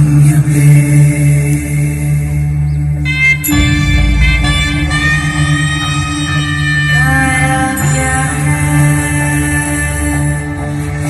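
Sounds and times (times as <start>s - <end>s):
deep voice chanting: 0.0s - 11.0s
steady drone: 0.0s - 11.0s.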